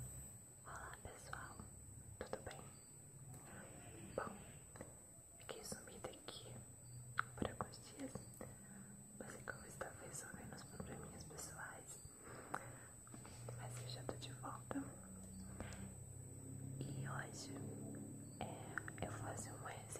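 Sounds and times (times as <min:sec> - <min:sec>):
woman whispering: 0:00.7 - 0:02.8, 0:03.4 - 0:06.6, 0:07.2 - 0:15.9, 0:16.8 - 0:17.8, 0:18.4 - 0:19.9.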